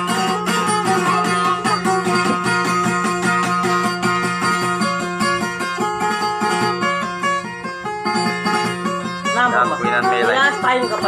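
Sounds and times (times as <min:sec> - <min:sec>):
plucked string instrument melody: 0:00.0 - 0:11.0.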